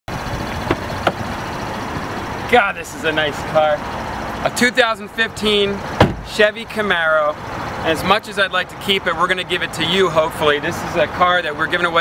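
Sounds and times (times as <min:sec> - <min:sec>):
car engine idling: 0:00.1 - 0:12.0.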